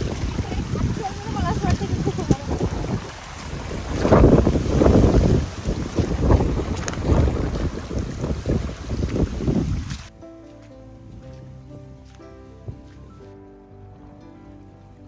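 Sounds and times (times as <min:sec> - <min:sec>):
wind buffeting microphone: 0:00.0 - 0:10.1
soft background music: 0:10.1 - 0:15.0.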